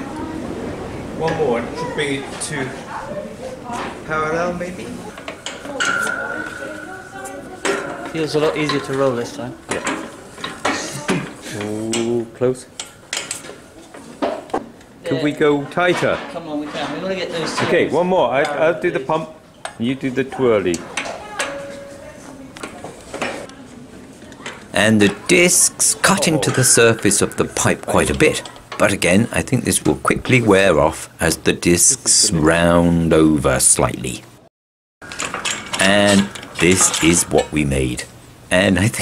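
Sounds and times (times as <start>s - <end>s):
metal clanks: 3.7s - 14.6s, 15.5s - 18.6s, 20.7s - 23.5s, 24.2s - 30.4s, 35.0s - 39.0s
pipe roller cranking: 4.0s - 12.2s, 35.0s - 39.0s
metallic ringing note: 5.0s - 9.6s.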